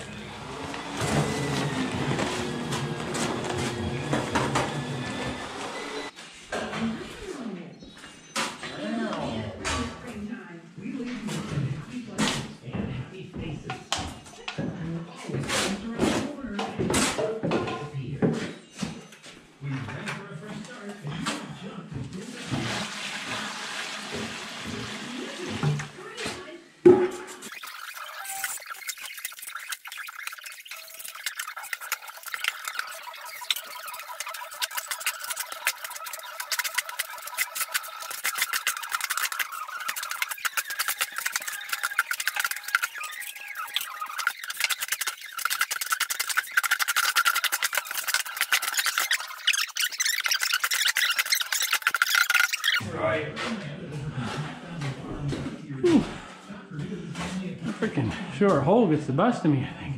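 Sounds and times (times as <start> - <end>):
mortar mixing scrape: 27.4 - 52.8.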